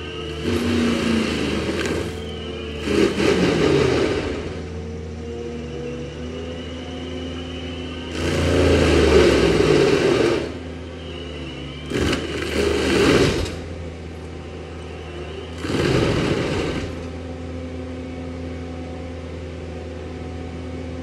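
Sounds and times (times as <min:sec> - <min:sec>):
mulcher drum grinding wood: 0:00.0 - 0:04.8, 0:08.1 - 0:11.2, 0:11.8 - 0:13.9, 0:14.8 - 0:17.2
loader engine humming: 0:00.0 - 0:21.0.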